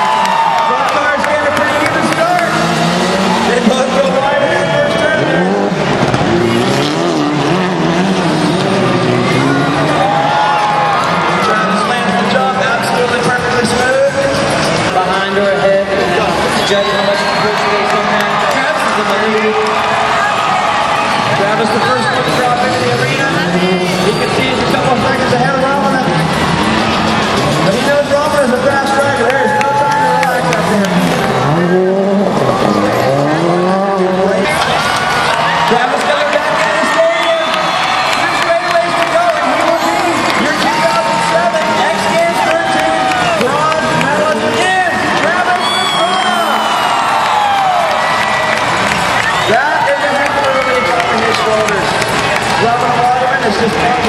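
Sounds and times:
rally car engine revving: 0.7 - 20.1, 21.0 - 46.3.

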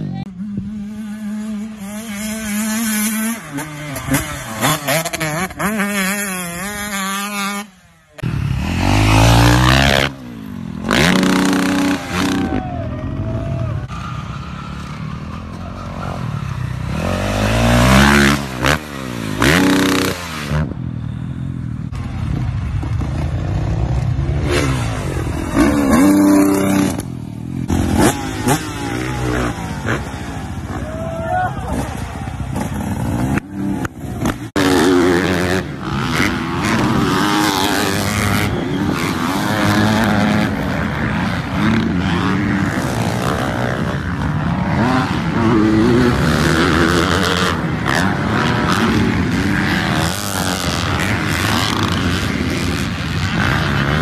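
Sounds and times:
dirt bike engines revving: 0.0 - 54.0
people's voices: 27.8 - 34.5.

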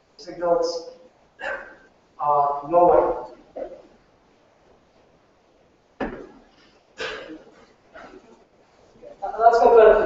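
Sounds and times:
man speaking: 0.2 - 1.6, 2.2 - 3.8, 9.1 - 10.0.

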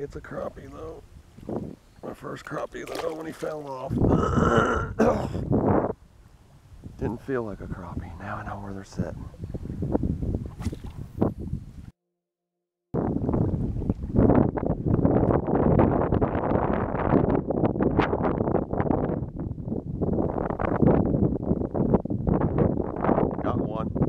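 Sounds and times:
wind buffeting microphone: 0.0 - 11.9, 13.0 - 24.0.

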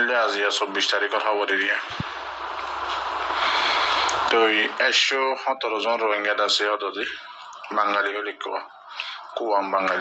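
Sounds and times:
steady rushing noise: 1.6 - 5.0
low hum: 1.8 - 5.0.

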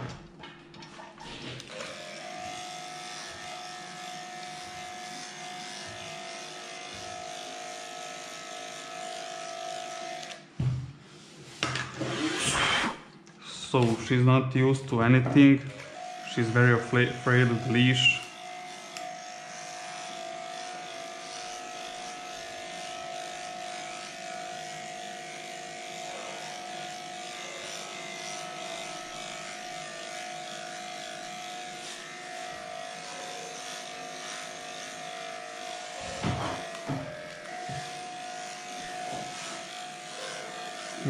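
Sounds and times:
dog clipper humming: 0.8 - 11.0, 11.7 - 41.0.

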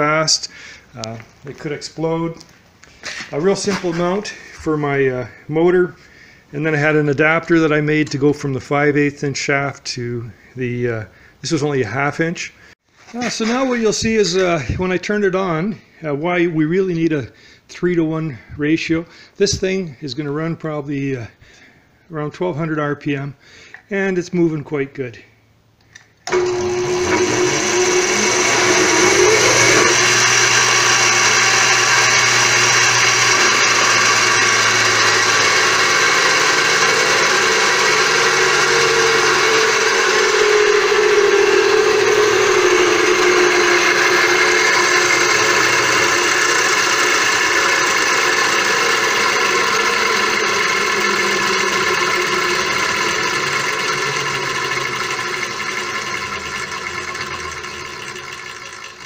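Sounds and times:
electric motor and chain whirring: 26.3 - 59.0.

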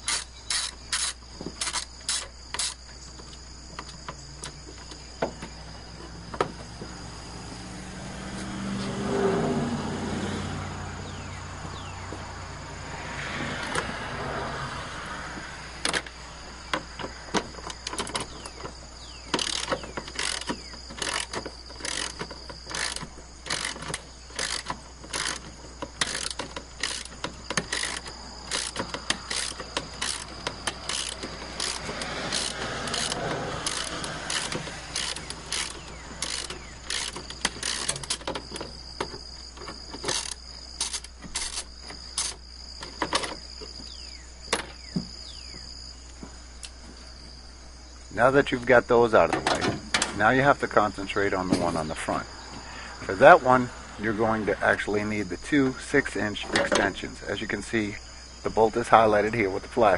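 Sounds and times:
hand ratchet clicking: 0.0 - 2.8, 19.3 - 38.7, 39.9 - 42.4
rustling of tool handling: 16.6 - 44.0.

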